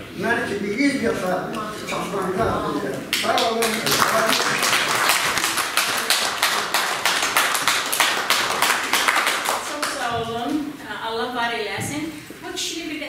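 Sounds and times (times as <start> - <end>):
audience applauding: 3.1 - 10.1
woman speaking: 9.6 - 13.0.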